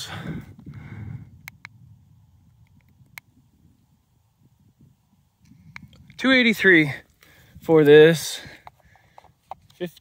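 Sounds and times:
low wind rumble: 0.0s - 9.6s
sharp clicks: 1.4s - 1.8s.

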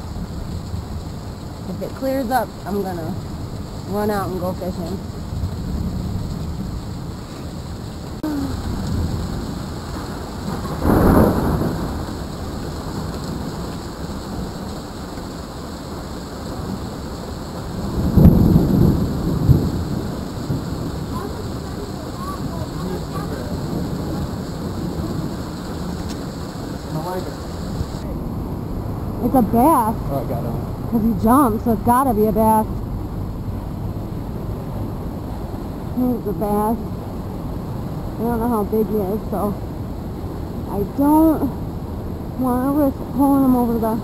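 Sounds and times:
heavy rain falling: 0.0s - 44.0s
rumble of thunder: 0.0s - 44.0s
thunderclap: 8.2s - 15.1s, 16.5s - 44.0s.

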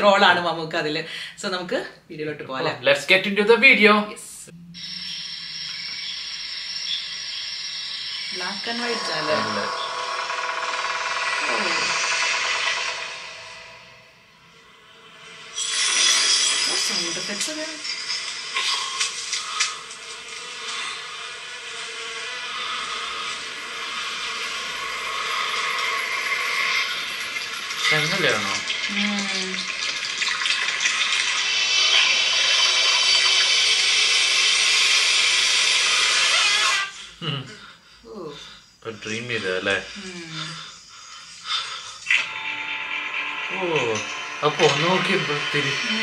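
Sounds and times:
steady hiss: 4.8s - 13.9s, 14.5s - 46.0s.

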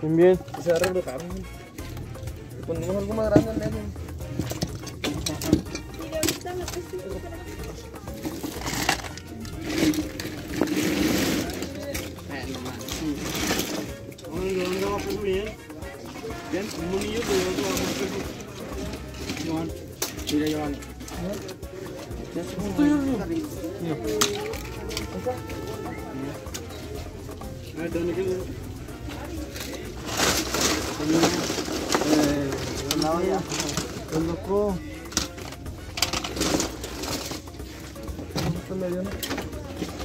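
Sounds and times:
plastic toys clattering: 0.0s - 40.0s.

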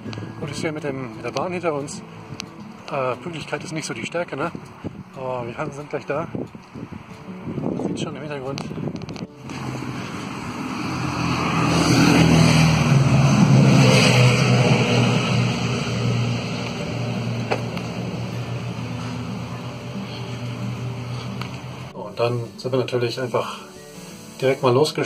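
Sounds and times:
vehicle passing by: 9.4s - 22.0s.

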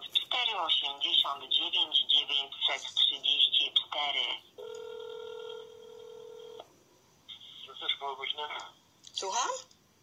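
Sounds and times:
telephone ringback tone: 4.6s - 6.6s.

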